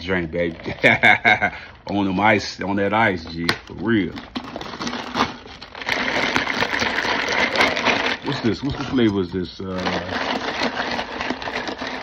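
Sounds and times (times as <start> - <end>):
ice rattling in plastic cup: 0.0 - 12.0.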